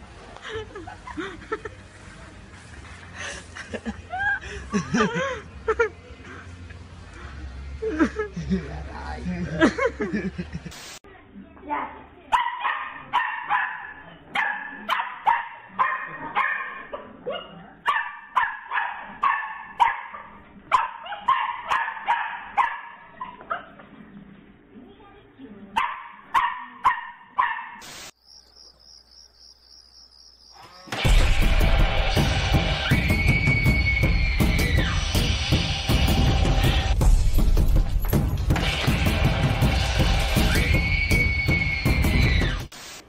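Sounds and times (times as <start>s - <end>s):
small dog barking: 12.3s - 23.8s, 25.8s - 27.8s.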